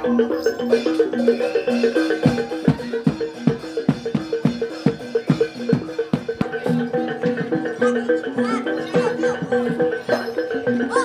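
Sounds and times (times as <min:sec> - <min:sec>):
struck metal melody: 0:00.0 - 0:11.0.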